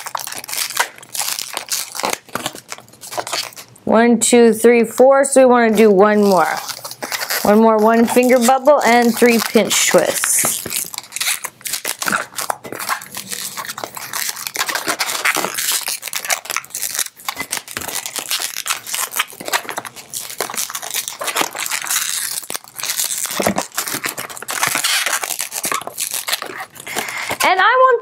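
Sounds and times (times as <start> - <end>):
balloon squeaking as twisted: 0.0 - 3.8, 5.8 - 28.0.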